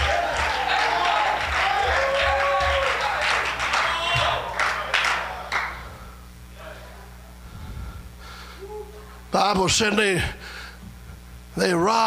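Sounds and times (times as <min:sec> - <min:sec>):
congregation shouting: 0:00.0 - 0:05.7
scattered clapping: 0:00.0 - 0:05.8.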